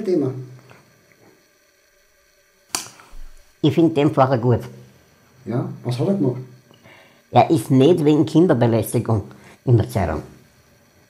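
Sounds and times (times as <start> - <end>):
sharp click: 2.7 - 3.2.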